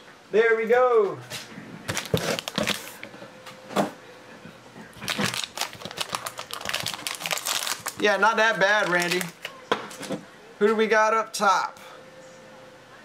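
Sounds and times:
foil wrapper crinkling and tearing: 0:01.9 - 0:03.0, 0:05.0 - 0:09.5.

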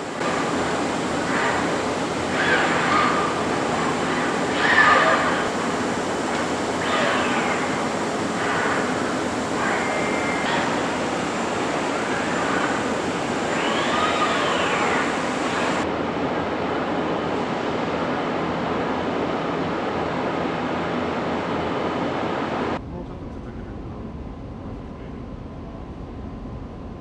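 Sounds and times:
machinery hissing roar: 0:00.0 - 0:15.9
machine whine: 0:00.0 - 0:27.0.

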